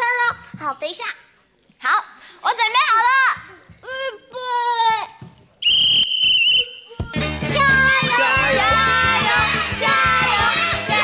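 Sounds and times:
referee's whistle: 0:05.6 - 0:07.0.

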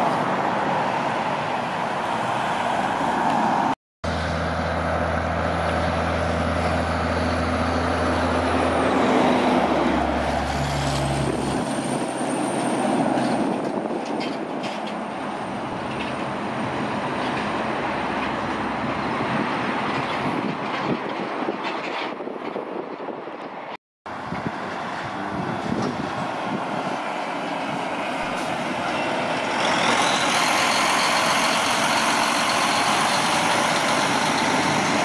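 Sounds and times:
truck engine: 0:00.0 - 0:22.3, 0:24.1 - 0:35.0
tyres and trailers rolling by: 0:00.0 - 0:35.0
trailers clattering and rattling: 0:04.8 - 0:35.0.

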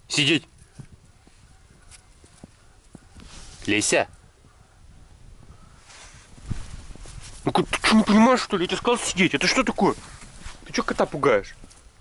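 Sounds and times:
soft low rustles: 0:00.5 - 0:11.9.

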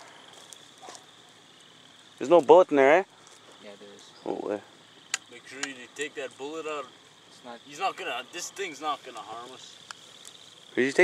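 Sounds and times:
insect trilling: 0:00.0 - 0:11.0.

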